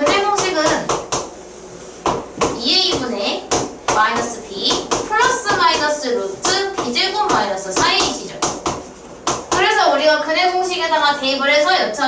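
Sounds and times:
chalk knocking on board: 0:02.0 - 0:09.7.

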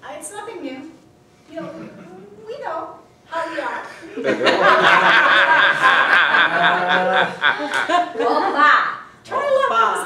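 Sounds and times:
people laughing: 0:04.0 - 0:08.7.

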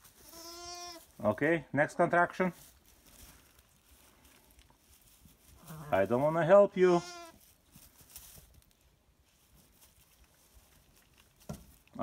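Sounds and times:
sheep bleat: 0:00.2 - 0:01.0, 0:06.9 - 0:07.4
faint rustles: 0:02.4 - 0:12.0.

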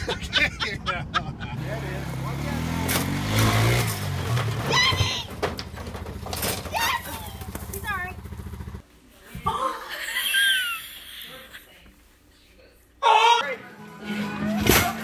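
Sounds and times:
engine revving and idling: 0:01.5 - 0:04.6.

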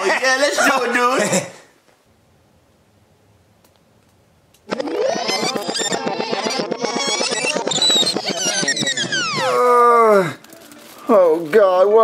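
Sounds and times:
high-pitched fluttering warble: 0:04.7 - 0:09.7.

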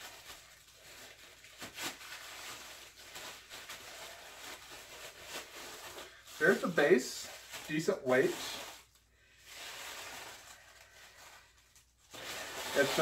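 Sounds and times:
plastic wrap rustling: 0:00.0 - 0:13.0.

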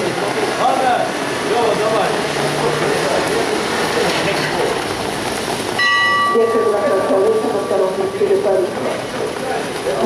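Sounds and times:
loud background noise: 0:00.0 - 0:10.0.

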